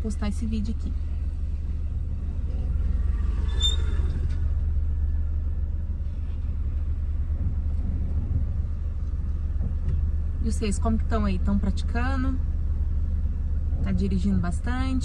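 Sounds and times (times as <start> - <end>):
car engine rumble inside cabin: 0.0 - 15.0
high-pitched squeak: 3.3 - 4.4.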